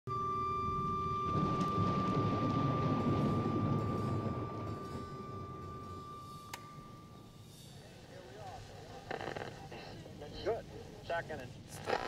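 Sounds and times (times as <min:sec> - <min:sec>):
deep rumble: 0:00.1 - 0:07.6
steady high tone: 0:00.1 - 0:08.0.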